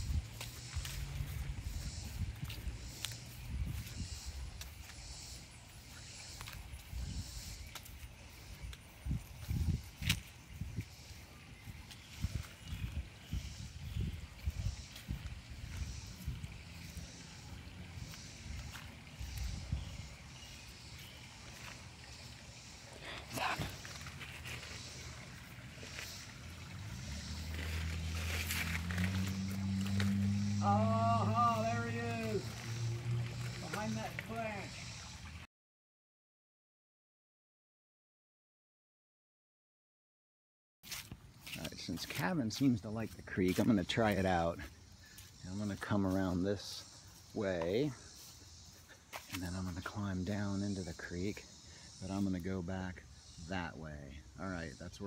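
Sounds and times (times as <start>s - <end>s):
footsteps on grass: 0.0s - 34.7s, 40.8s - 50.0s
rustle through shrubs: 0.0s - 35.4s, 40.8s - 51.2s.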